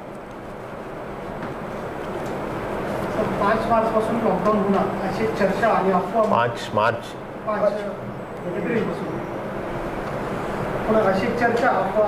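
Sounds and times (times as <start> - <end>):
room hum with hiss: 0.0 - 12.0.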